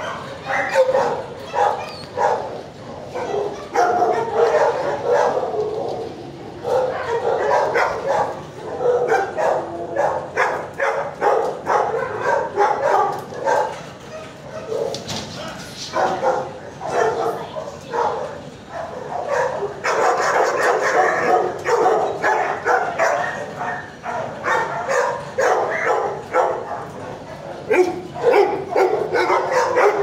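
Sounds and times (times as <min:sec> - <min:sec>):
dog barking: 0:00.0 - 0:30.0.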